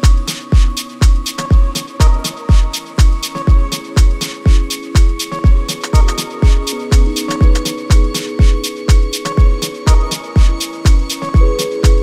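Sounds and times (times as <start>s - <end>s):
crisp hi-hat hits: 0.0s - 12.0s
deep kick drum: 0.0s - 12.0s
held synth chords: 0.0s - 12.0s.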